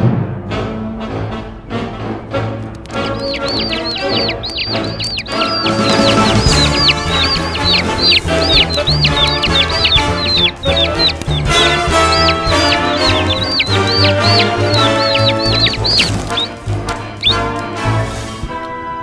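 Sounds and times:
cartoon music with bassline: 0:01.0 - 0:18.6
high quick cartoon bird peeps: 0:03.0 - 0:17.5.

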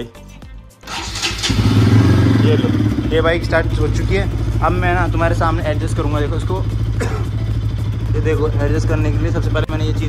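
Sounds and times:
electric starter: 0:00.8 - 0:02.1
motorcycle engine idling: 0:00.9 - 0:10.0.

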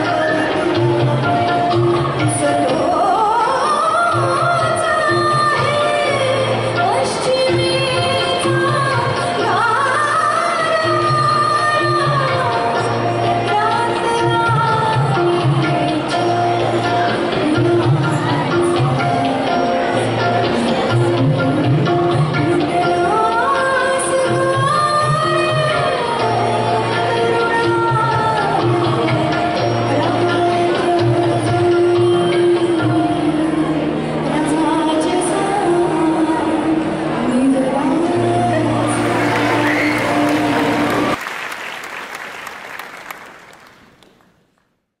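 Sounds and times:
instrumental accompaniment: 0:00.0 - 0:36.3, 0:38.4 - 0:42.2
woman singing into microphone: 0:00.0 - 0:41.2
audience applause: 0:38.8 - 0:44.2.

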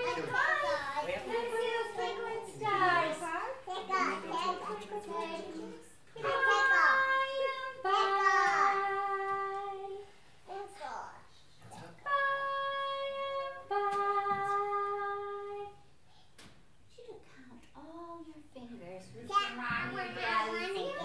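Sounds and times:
people singing held notes: 0:03.9 - 0:10.1.

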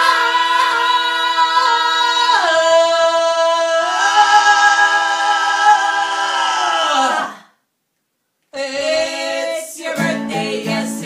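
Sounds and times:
vocal music singing: 0:00.0 - 0:07.6, 0:08.5 - 0:11.0.

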